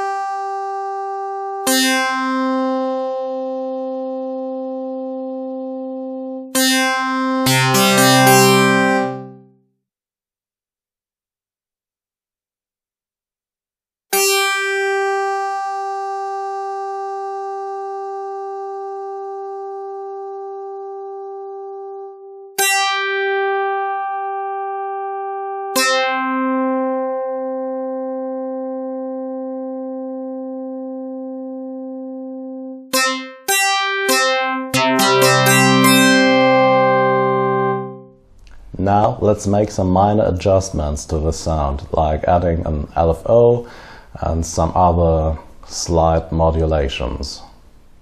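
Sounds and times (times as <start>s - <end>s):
synthesizer guitar-like notes: 0.0s - 9.6s, 14.1s - 39.4s.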